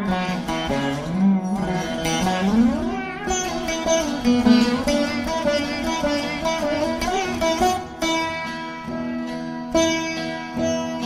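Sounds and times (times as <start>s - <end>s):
plucked veena notes sliding: 0.0s - 11.0s.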